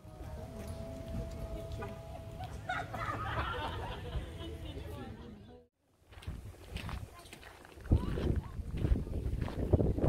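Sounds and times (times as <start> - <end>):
wind rumbling on microphone: 6.1 - 10.0.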